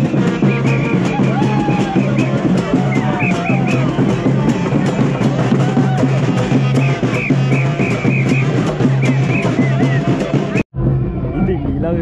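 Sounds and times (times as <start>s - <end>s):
drums beating quick rhythm: 0.0s - 10.7s
held horn notes: 0.0s - 11.3s
high brass phrases: 0.0s - 11.3s.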